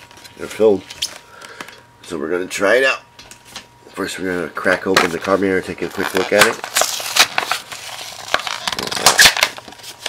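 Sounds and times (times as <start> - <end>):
plastic crackling: 5.0 - 10.0
cardboard ripping: 5.8 - 10.0.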